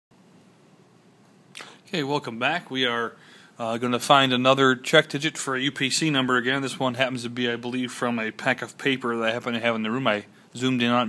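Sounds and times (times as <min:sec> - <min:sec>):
low room hiss: 0:00.1 - 0:11.0
man speaking: 0:01.6 - 0:11.0.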